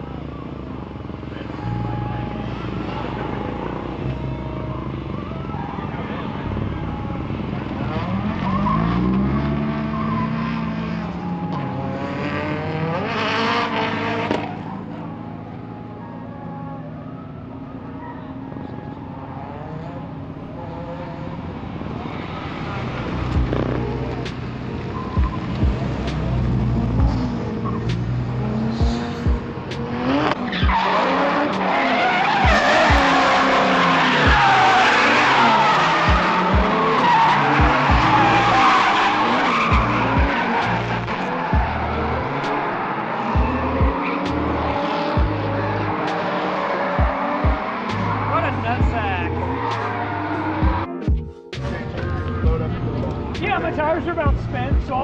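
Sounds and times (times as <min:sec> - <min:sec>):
car engine revving: 0:00.0 - 0:16.7, 0:17.9 - 0:55.0
tires squealing: 0:00.0 - 0:55.0.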